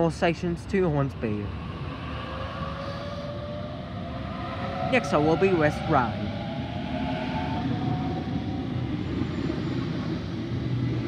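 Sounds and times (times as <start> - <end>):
wheels rumbling on rails: 0.0 - 11.0.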